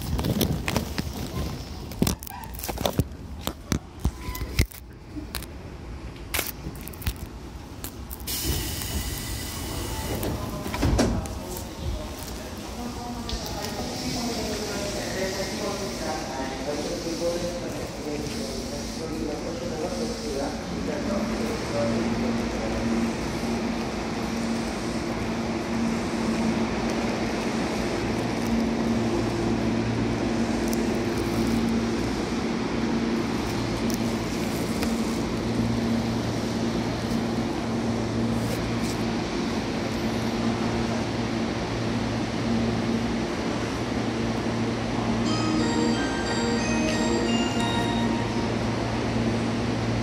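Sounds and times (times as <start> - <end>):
train wheels rumbling on rail: 0.0 - 45.4.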